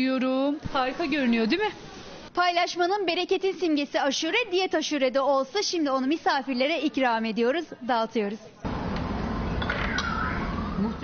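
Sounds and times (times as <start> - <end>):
brief falling tone: 9.4 - 11.0.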